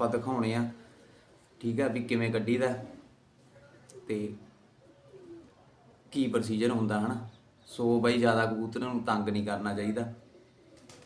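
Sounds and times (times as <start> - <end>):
pigeon cooing: 2.6 - 6.2, 10.1 - 11.0.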